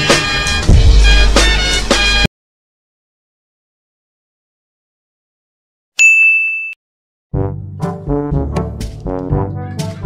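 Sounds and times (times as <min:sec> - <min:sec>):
brass music: 0:00.0 - 0:02.3, 0:07.3 - 0:10.0
bright bell ding: 0:06.0 - 0:06.8.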